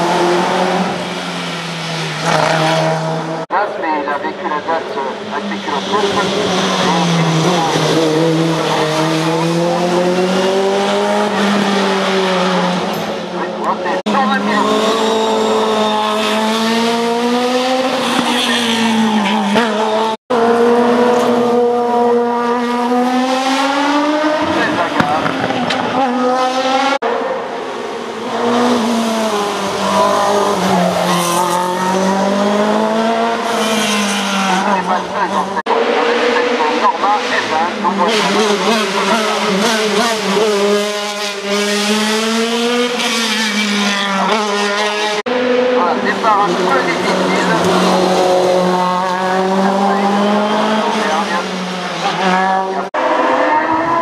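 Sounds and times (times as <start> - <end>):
race car engines revving: 0.0 - 54.0.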